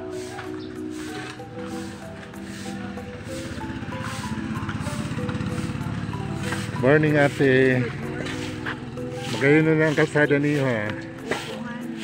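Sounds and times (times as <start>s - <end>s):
background music with held notes: 0.0s - 12.0s
motorcycle engine puttering: 0.4s - 11.2s.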